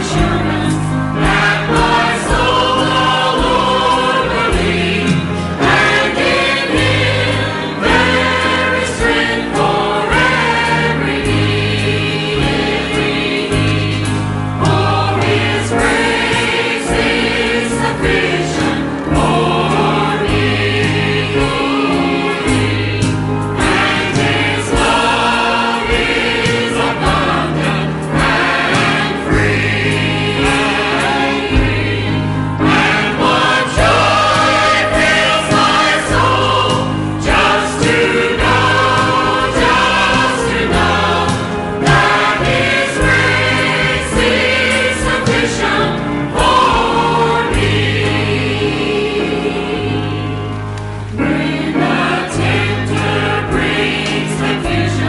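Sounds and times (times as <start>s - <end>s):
church choir singing a hymn: 0.0s - 55.0s.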